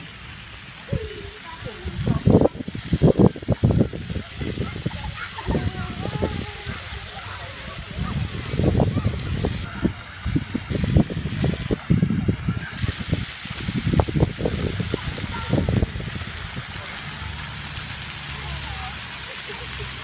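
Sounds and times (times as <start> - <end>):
fountains hissing: 0.0 - 20.0
thumps and buffeting on microphone: 1.9 - 16.7.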